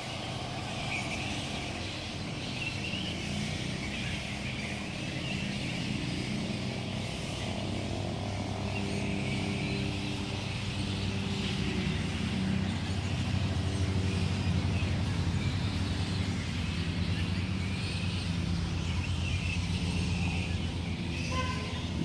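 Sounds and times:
vehicle engine running: 0:00.0 - 0:22.0.

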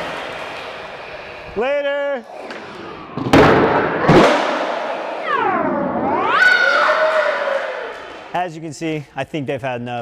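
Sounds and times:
high-pitched shout: 0:06.0 - 0:08.0.

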